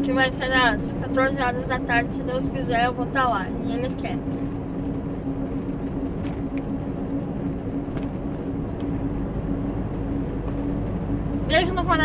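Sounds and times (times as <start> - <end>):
rumbling road noise: 0.0 - 12.0
truck diesel engine drone: 0.0 - 12.0.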